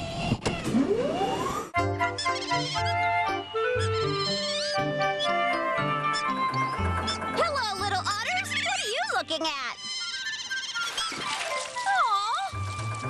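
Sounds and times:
light children's music: 1.8s - 13.0s
squeaky cartoon chattering calls: 2.1s - 11.3s.

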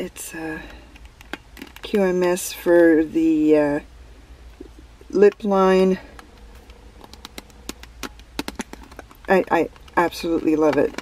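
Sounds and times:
faint steady hum: 0.0s - 11.0s
plastic packaging clicks and taps: 6.1s - 11.0s.

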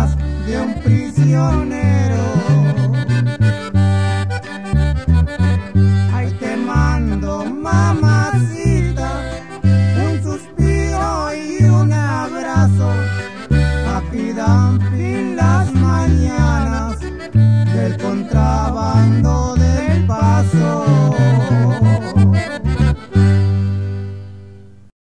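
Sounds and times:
accordion melody: 0.0s - 24.9s
bass notes: 0.0s - 24.9s
guitar: 0.0s - 24.9s.

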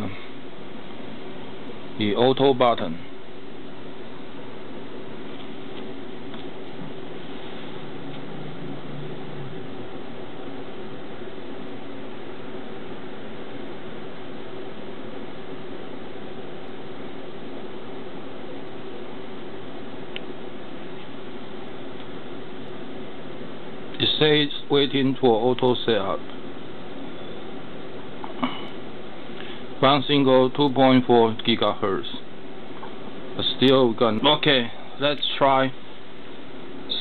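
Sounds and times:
fan hum and hiss: 0.0s - 37.0s.

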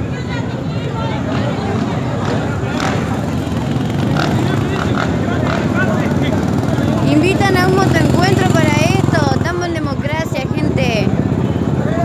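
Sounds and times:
people shouting and yelling: 0.0s - 10.1s, 11.6s - 12.0s
vehicle engine running: 1.2s - 11.9s.

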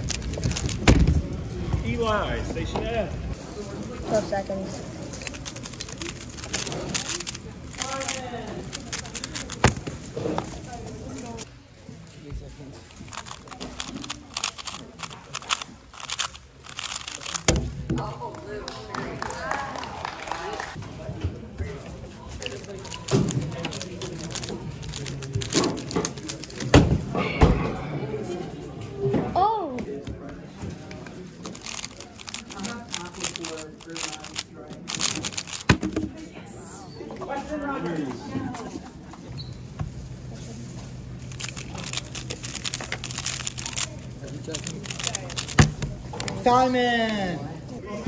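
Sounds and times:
rapid plastic cube clicks: 0.0s - 1.2s, 5.2s - 10.0s, 13.1s - 17.7s, 22.6s - 26.7s, 31.4s - 36.1s, 41.3s - 46.4s
voices chattering: 0.0s - 19.2s, 30.0s - 48.0s
plastic cube clicks: 31.5s - 36.0s, 41.3s - 46.4s.

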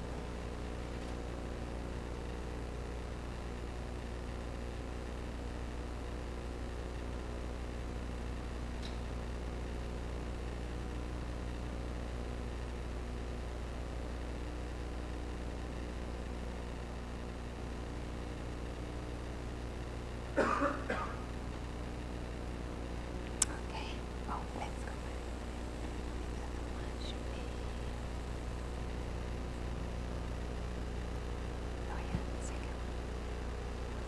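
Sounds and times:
low electrical hum: 0.0s - 34.0s
person coughing: 20.4s - 21.3s.

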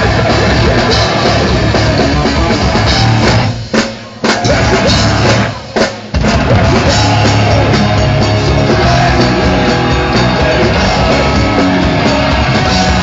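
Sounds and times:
hardcore band playing live: 0.0s - 13.0s.

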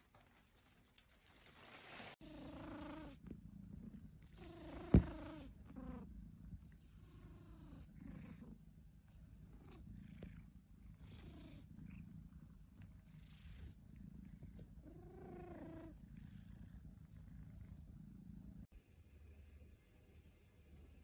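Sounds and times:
cat purring: 2.2s - 19.7s.

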